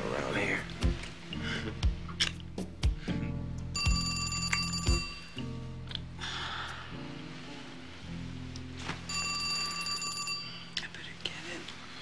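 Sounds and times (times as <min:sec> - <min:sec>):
telephone bell ringing: 0:03.8 - 0:05.4, 0:09.1 - 0:10.8.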